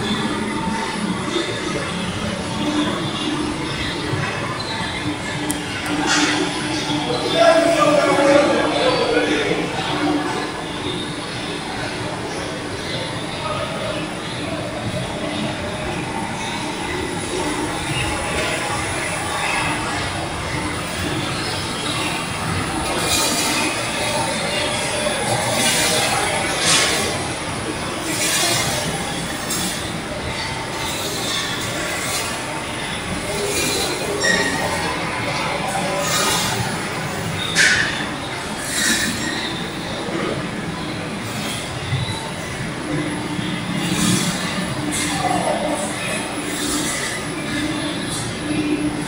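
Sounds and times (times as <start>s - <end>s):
steady mechanical noise: 0.0s - 49.0s.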